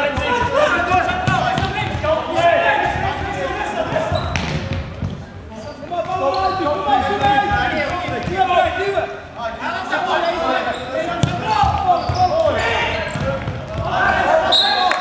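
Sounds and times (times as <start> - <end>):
players calling out: 0.0 - 15.0.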